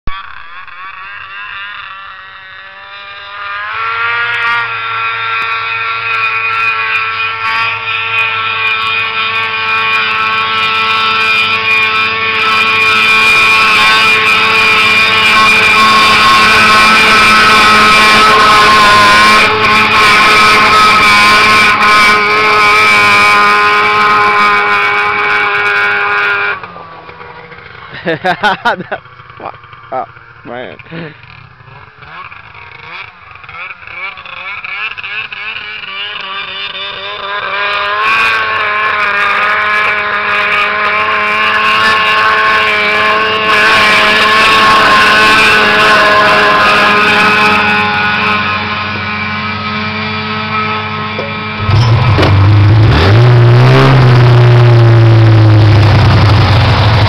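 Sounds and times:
snowmobile engine high revs: 0.0 - 57.0.

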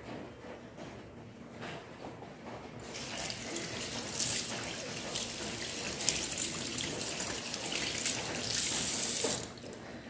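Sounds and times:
tap water running into sink: 2.8 - 9.8.

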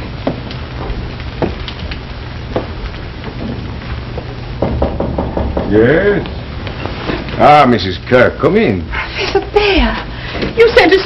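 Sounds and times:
crackling clicks: 0.0 - 4.6
low hum and hiss: 0.0 - 11.0
soft knocks: 4.2 - 6.3.

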